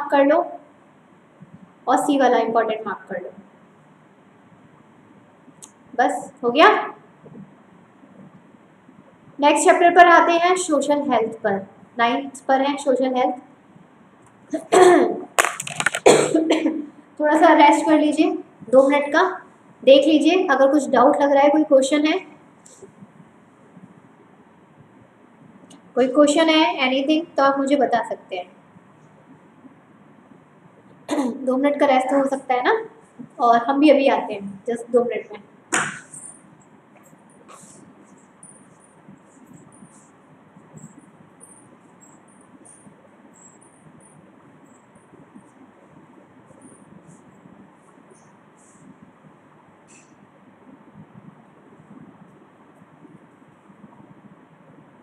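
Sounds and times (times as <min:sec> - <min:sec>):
steady low hiss: 0:00.0 - 0:55.0
high-pitched insect chirps: 0:40.7 - 0:45.1.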